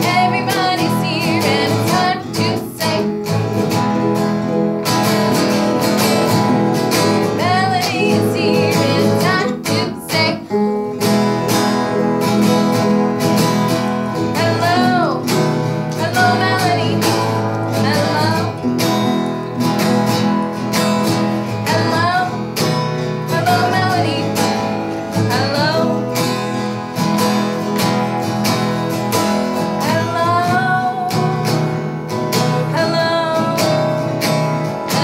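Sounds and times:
woman singing: 0:00.0 - 0:03.4, 0:06.0 - 0:10.8, 0:14.0 - 0:19.2, 0:20.8 - 0:26.8, 0:29.5 - 0:35.0
acoustic guitar strumming chords: 0:00.0 - 0:35.0.

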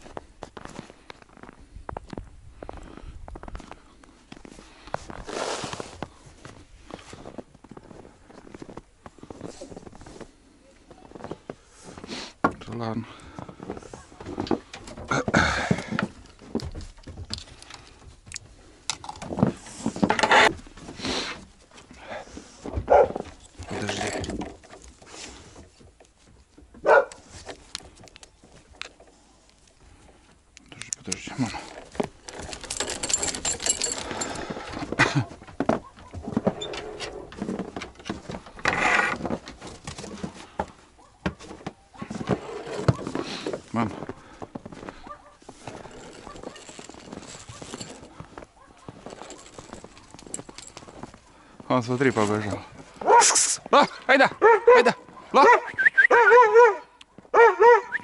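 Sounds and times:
footsteps crunching in snow: 0:00.0 - 0:12.3, 0:41.4 - 0:53.8
dog barking: 0:22.8 - 0:23.2, 0:26.8 - 0:27.2, 0:45.0 - 0:45.4, 0:46.2 - 0:46.7, 0:48.6 - 0:51.0, 0:53.0 - 0:53.4, 0:54.4 - 0:58.0.

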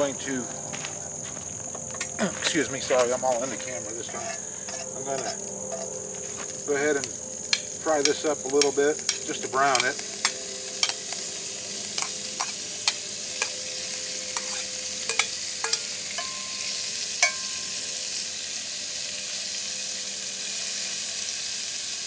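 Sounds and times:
meat sizzling in oil: 0:06.5 - 0:22.0
metal spoon clinking on pot: 0:08.0 - 0:11.1, 0:14.4 - 0:17.7.

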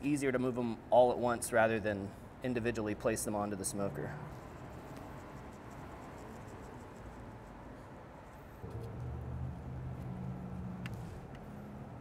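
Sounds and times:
low hum: 0:08.6 - 0:12.0.

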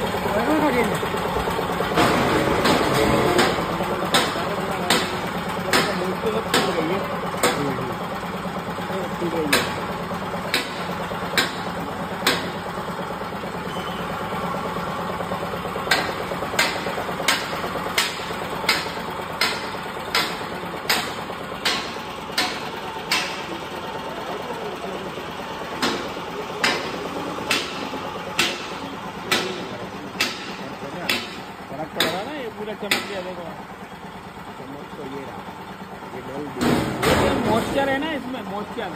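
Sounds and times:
grain-cutting machine humming: 0:00.0 - 0:38.9
sharp knocks: 0:01.9 - 0:07.8, 0:09.4 - 0:12.6, 0:15.8 - 0:23.6, 0:25.7 - 0:33.4, 0:36.6 - 0:37.7.

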